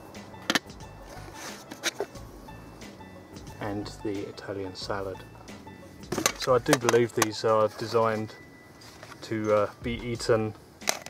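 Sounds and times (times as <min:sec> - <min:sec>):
metal tins clicking on a tray: 0:06.2 - 0:07.4.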